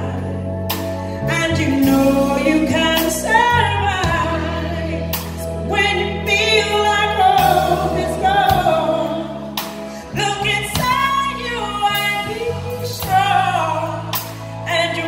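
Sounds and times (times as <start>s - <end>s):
electric bass guitar: 0.0s - 15.0s
woman singing pop ballad: 0.0s - 15.0s.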